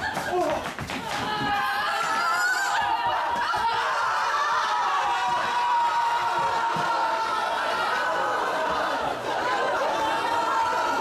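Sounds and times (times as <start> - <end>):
audience laughing: 7.5 - 11.0.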